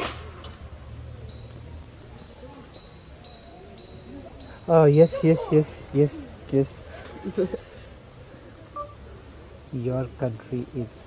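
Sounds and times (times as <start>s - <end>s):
man speaking into phone: 4.7s - 6.8s
short electronic beep: 8.8s - 9.0s.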